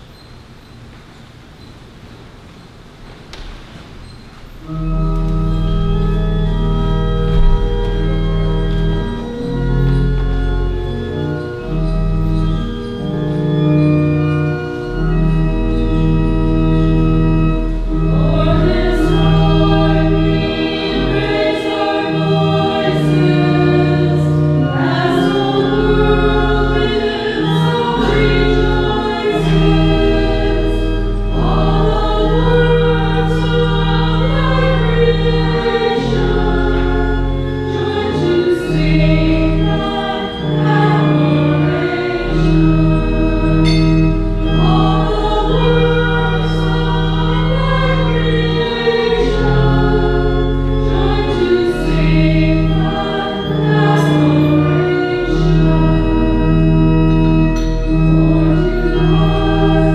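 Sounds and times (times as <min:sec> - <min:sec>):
choir singing a hymn: 0:04.6 - 0:59.9
held low instrument notes: 0:04.6 - 0:59.9.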